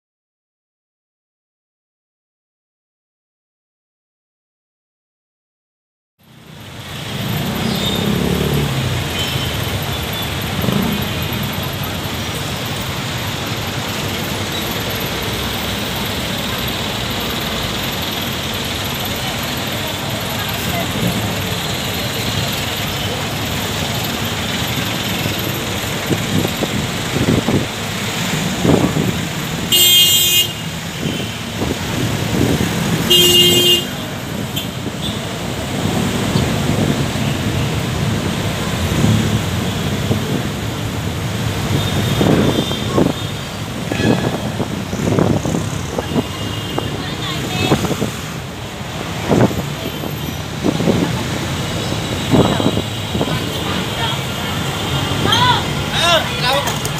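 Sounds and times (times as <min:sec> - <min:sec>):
city traffic noise: 0:06.2 - 0:56.9
vehicle horn tooting: 0:29.7 - 0:31.5, 0:33.0 - 0:35.2, 0:41.8 - 0:44.6.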